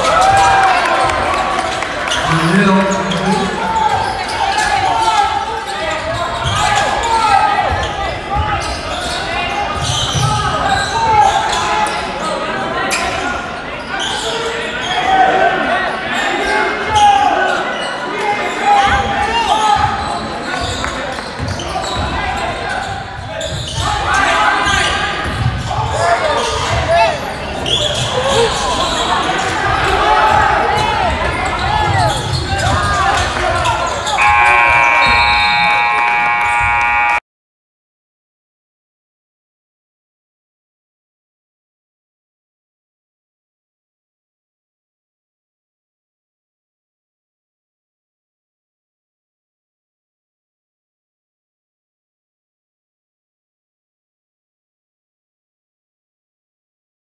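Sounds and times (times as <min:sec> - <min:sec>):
spectators calling out and cheering: 0:00.0 - 0:13.7, 0:23.7 - 0:37.2
scoreboard horn: 0:02.2 - 0:03.9, 0:34.2 - 0:37.2.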